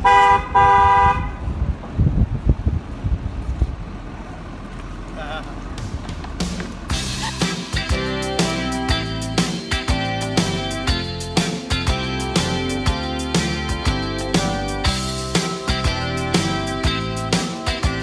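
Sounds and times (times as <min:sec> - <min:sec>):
vehicle horn honking: 0:00.0 - 0:01.4
strummed guitar music: 0:06.9 - 0:18.0.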